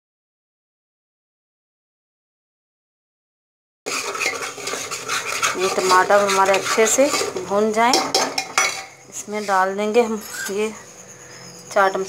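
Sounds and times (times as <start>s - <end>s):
spatula scraping metal pot: 3.9s - 10.8s.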